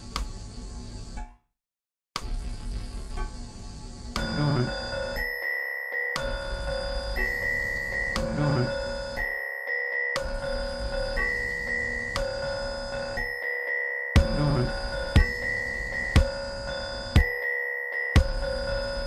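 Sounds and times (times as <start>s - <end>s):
low bass layer: 2.2s - 5.2s, 8.2s - 9.1s, 14.2s - 17.2s
looped synthesizer tones: 2.4s - 13.5s, 14.1s - 19.0s.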